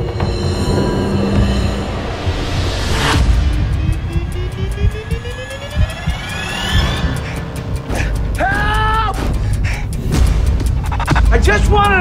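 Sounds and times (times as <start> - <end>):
tone rising in pitch: 0.0 - 7.8
low rumbling music: 0.0 - 12.0.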